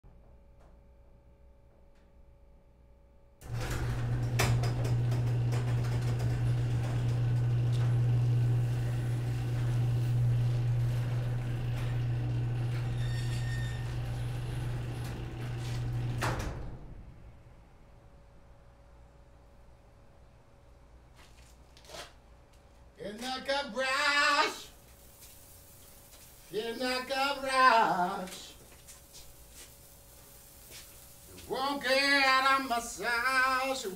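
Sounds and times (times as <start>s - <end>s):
garage door rattling on tracks: 3.4s - 17.3s
garage door motor humming: 3.4s - 17.8s, 23.1s - 33.9s.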